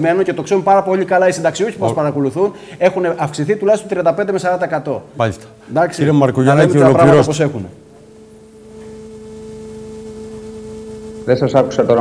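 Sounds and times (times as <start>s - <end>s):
electronic hum-like tone: 5.0s - 12.0s.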